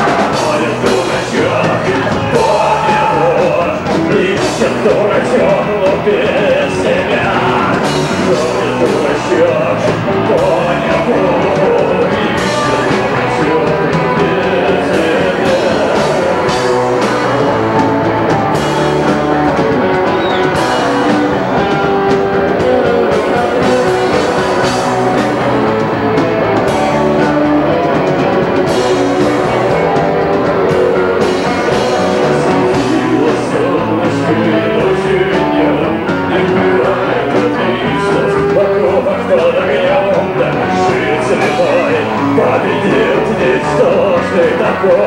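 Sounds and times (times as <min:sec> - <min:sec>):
bass guitar: 0:00.0 - 0:45.0
drum kit: 0:00.0 - 0:45.0
electric guitars: 0:00.0 - 0:45.0
man singing: 0:00.0 - 0:45.0.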